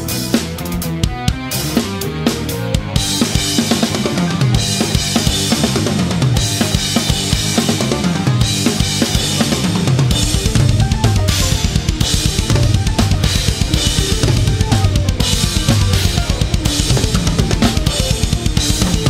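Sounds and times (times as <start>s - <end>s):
fast rock drumming: 0.0s - 19.0s
progressive metal band music: 0.0s - 19.0s.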